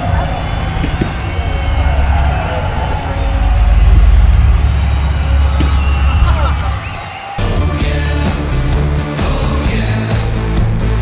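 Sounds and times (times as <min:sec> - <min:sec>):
low outdoor rumble: 0:00.0 - 0:07.0.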